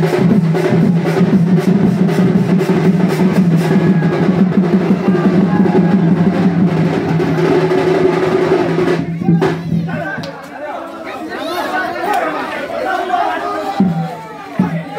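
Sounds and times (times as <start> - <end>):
band fast drumming: 0.0 - 10.3, 13.7 - 14.9
crowd chatter: 0.8 - 14.9.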